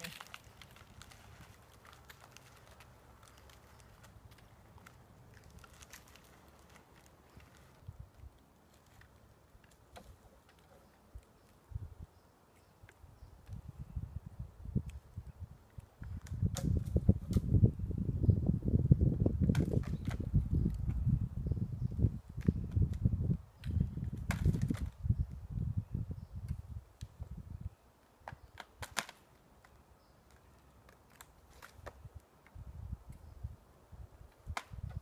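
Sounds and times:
wind buffeting microphone: 11.6 - 12.2, 13.0 - 27.8, 32.0 - 35.0.

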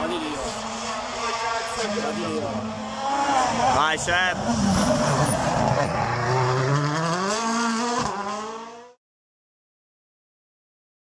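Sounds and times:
rally car engine accelerating: 0.0 - 9.0.

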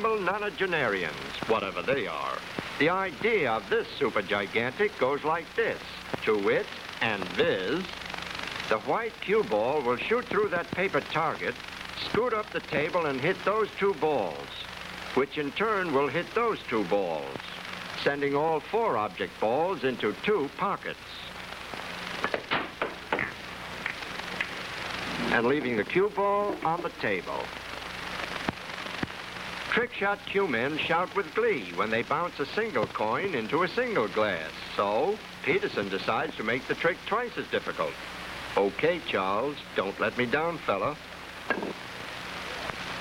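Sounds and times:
film soundtrack hiss and hum: 0.0 - 43.0
billiard balls clicking: 22.2 - 24.6
cue striking ball: 41.5 - 41.8.

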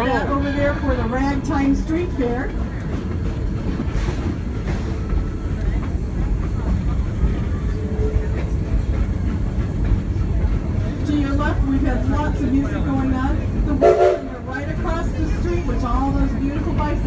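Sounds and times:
train wheels rumbling: 0.0 - 17.0.

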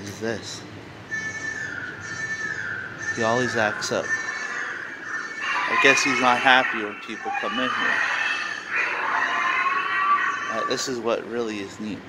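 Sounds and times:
hissy eerie electronic noise: 0.3 - 12.0
steady electronic tone: 1.0 - 10.9.

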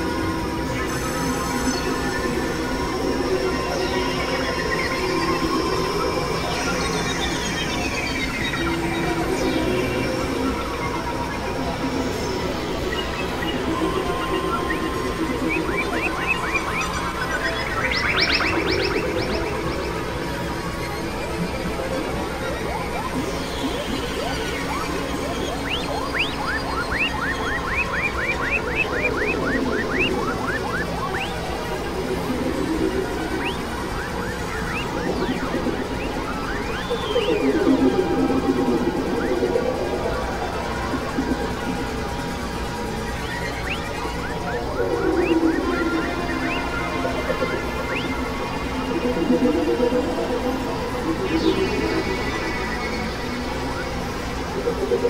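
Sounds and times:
noisy synthesizer drone: 0.0 - 55.0
quick rising synth chirps: 23.5 - 55.0.

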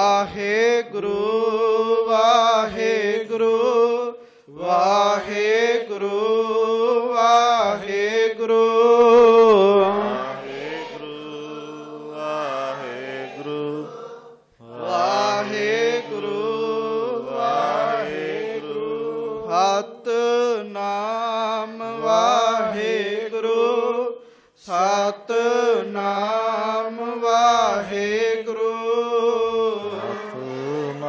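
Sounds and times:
man chanting: 0.0 - 13.9, 14.6 - 31.0.

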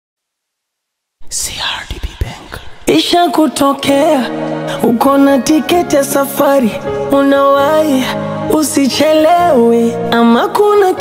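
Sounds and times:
person whispering: 1.2 - 3.0.

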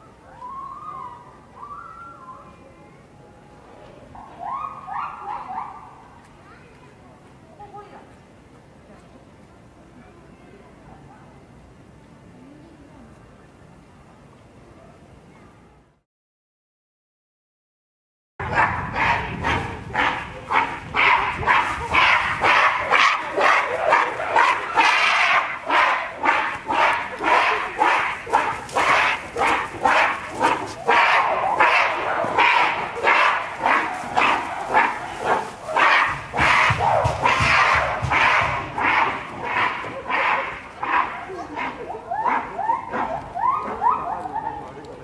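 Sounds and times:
gorilla screaming: 18.5 - 44.5.

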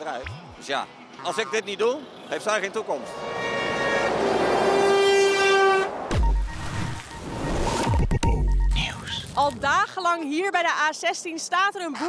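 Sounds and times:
motorway traffic: 0.0 - 7.9
lorry horn blast: 3.1 - 6.1.

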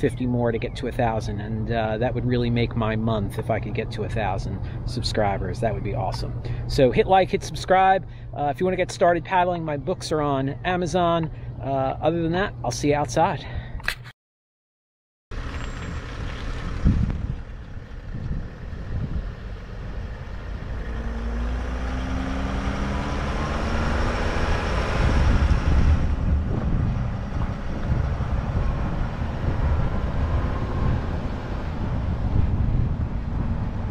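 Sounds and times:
van engine driving past: 15.3 - 33.9.

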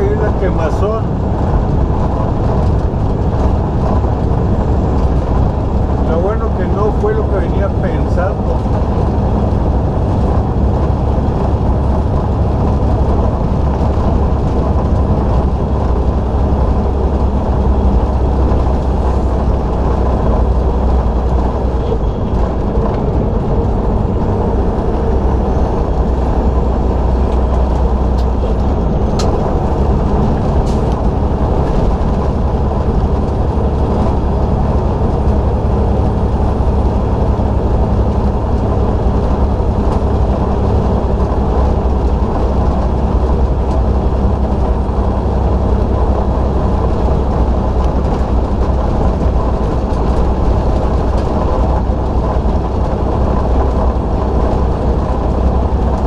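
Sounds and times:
tyre and wind noise: 0.0 - 6.2, 8.4 - 56.0
truck diesel engine droning: 0.0 - 56.0.

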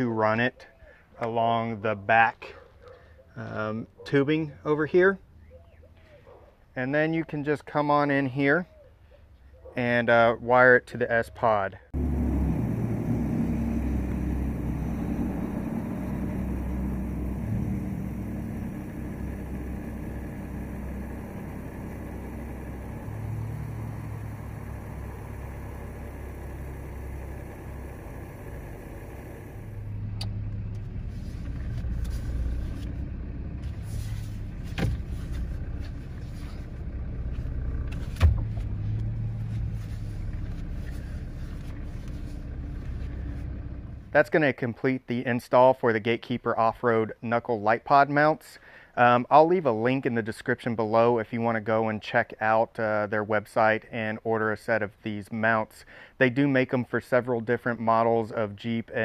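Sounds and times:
car engine low rumble: 11.8 - 44.3.

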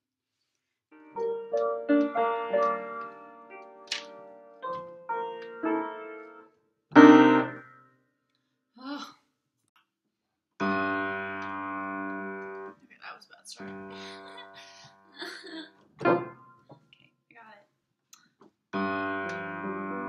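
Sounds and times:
upright piano chords: 0.9 - 7.8, 10.6 - 12.8, 16.0 - 16.7, 18.8 - 20.0
person's voice: 12.8 - 15.7.

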